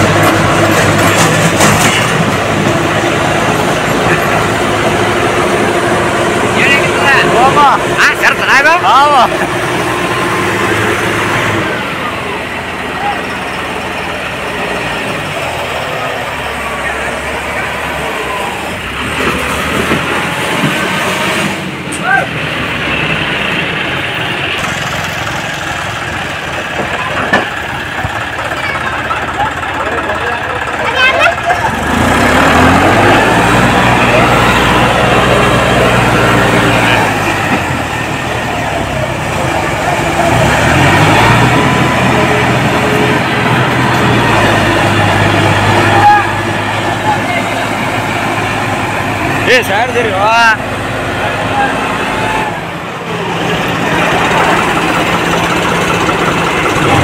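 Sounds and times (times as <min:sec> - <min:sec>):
people's voices: 0:00.0 - 0:57.0
tractor diesel engines running: 0:00.0 - 0:57.0.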